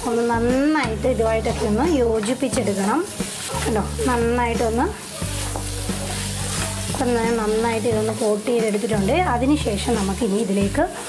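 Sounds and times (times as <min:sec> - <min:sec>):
chicken sizzling in oil: 0:00.0 - 0:11.0
wooden spatula scraping pan: 0:01.1 - 0:10.2.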